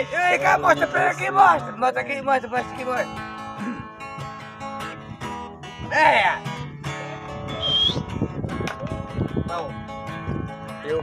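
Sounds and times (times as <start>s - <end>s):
acoustic guitar strummed: 0.0s - 11.0s.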